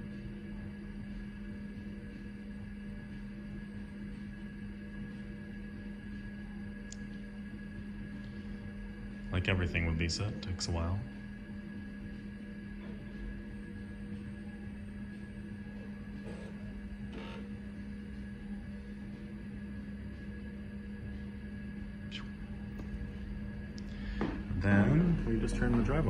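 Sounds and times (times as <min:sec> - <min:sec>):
hard drive humming: 0:00.0 - 0:26.0.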